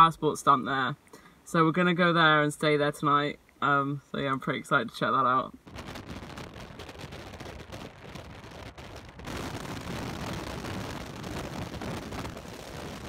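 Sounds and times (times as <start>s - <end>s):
car tyre and wind noise: 5.6s - 13.0s.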